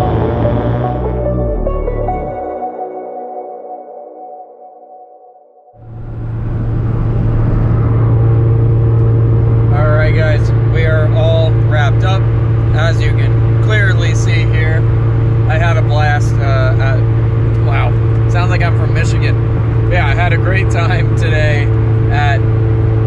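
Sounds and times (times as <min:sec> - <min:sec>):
engine and road noise drone: 0:00.0 - 0:02.4, 0:05.8 - 0:23.0
steady tones: 0:05.8 - 0:23.0.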